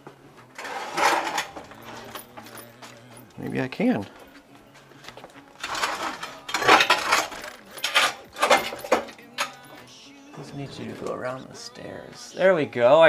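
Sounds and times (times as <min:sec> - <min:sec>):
metal rack rattling and scraping: 0:00.6 - 0:02.8, 0:05.6 - 0:09.6.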